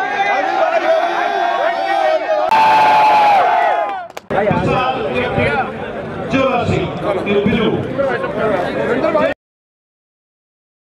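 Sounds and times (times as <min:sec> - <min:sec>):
long held shout: 0:00.0 - 0:04.1
crowd cheering: 0:00.0 - 0:05.7.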